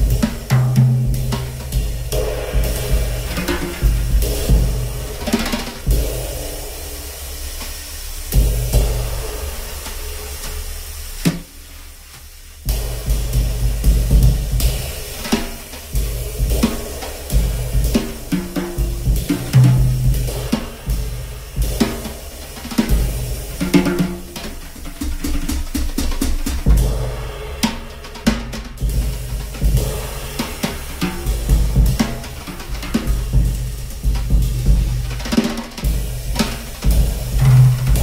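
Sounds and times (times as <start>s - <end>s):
drum kit played with sticks: 0.0s - 38.0s.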